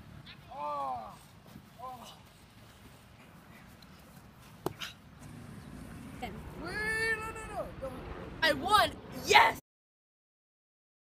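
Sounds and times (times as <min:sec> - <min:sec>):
boy yelling with effort: 0:00.4 - 0:01.2, 0:06.6 - 0:09.6.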